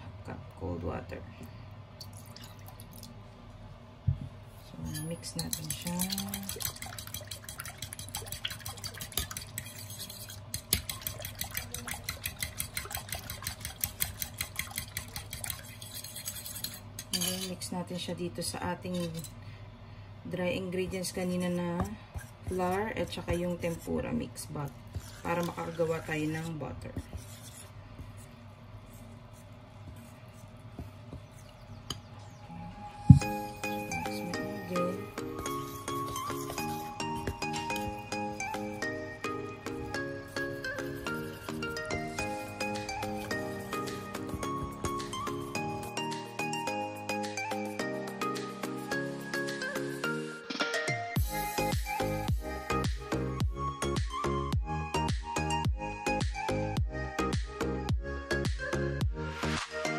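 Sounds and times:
spoon stirring batter in bowl: 4.7 - 17.7, 18.8 - 19.3, 20.9 - 32.1, 33.6 - 38.8, 39.4 - 46.5
liquid sloshing: 5.4 - 16.4
background music with held notes: 32.5 - 59.9
loud thump: 33.1 - 33.3.

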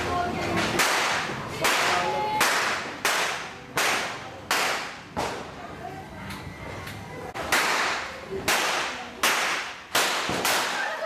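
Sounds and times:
firecracker bangs echoing: 7.4 - 11.0.

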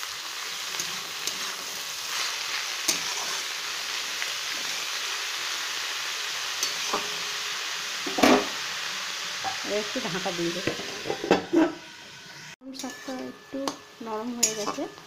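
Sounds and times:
spinach sizzling in hot oil: 0.0 - 15.0
spatula stirring and scraping: 0.4 - 5.0.

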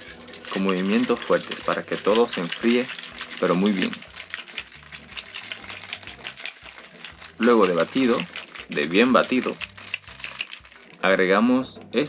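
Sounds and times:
ice rattling in cocktail shaker: 0.0 - 11.3.

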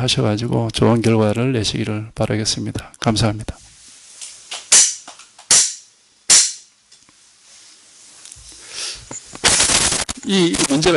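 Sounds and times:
short burst of noise: 9.4 - 10.9.

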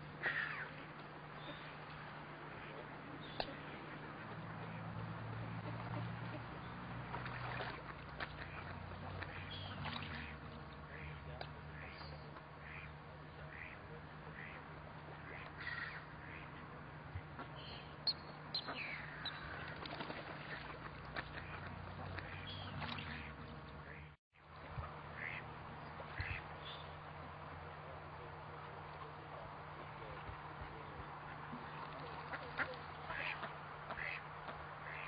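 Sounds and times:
ducks calling: 0.2 - 0.8, 1.4 - 24.2, 24.8 - 27.0, 31.2 - 35.0
duck calling: 25.2 - 25.4, 32.2 - 35.0.

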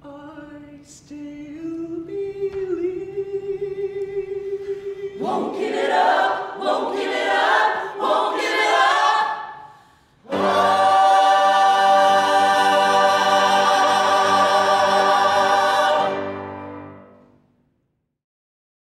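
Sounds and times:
ensemble of singers: 0.0 - 17.1.

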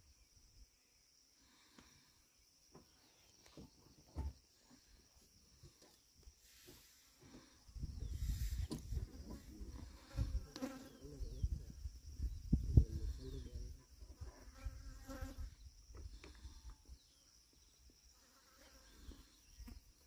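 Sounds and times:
insects droning: 0.0 - 20.0.

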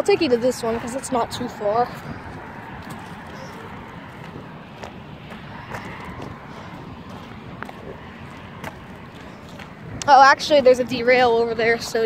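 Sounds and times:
footsteps on gravel: 1.9 - 9.9.

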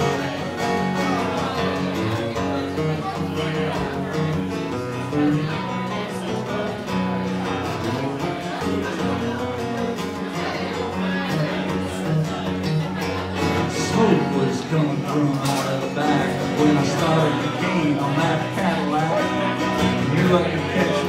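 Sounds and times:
acoustic guitar picking: 0.0 - 21.0
person singing: 13.5 - 21.0.

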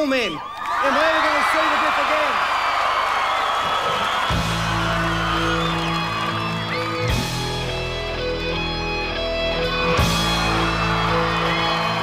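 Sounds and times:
crowd cheering: 0.0 - 12.0
held electric guitar and bass chord: 6.1 - 11.6.

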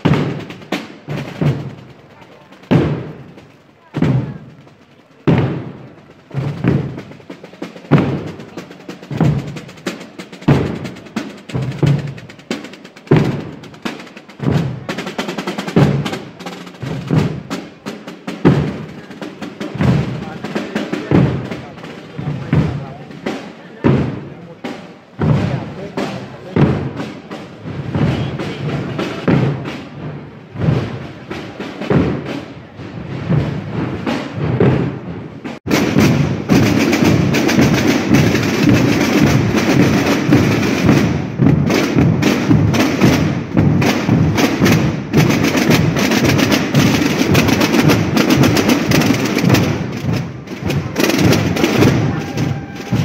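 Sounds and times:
heavy bass drum strokes: 0.0 - 53.0
lighter drum strokes: 0.0 - 53.0.

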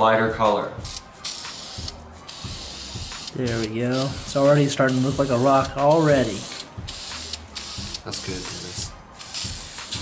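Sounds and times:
spray can hissing: 0.8 - 10.0.

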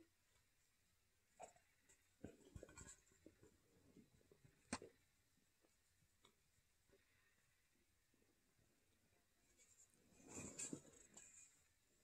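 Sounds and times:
handling rustle with soft clicks: 0.1 - 7.1, 9.2 - 12.0.

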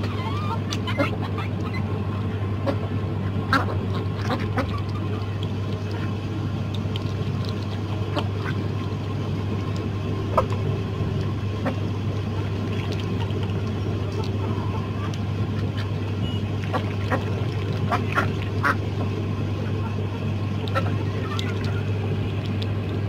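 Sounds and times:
ducks quacking: 0.0 - 6.2, 7.2 - 22.6
steady low hum: 0.0 - 23.0
ducks pecking clicks: 0.6 - 1.8, 3.5 - 23.0.

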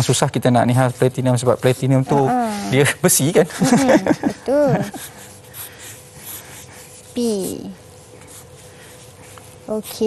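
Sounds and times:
pencils scratching on paper: 4.8 - 10.0.

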